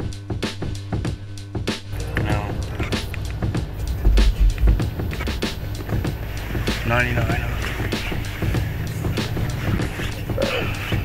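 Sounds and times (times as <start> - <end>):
bass-heavy music from car stereo: 0.0 - 11.0.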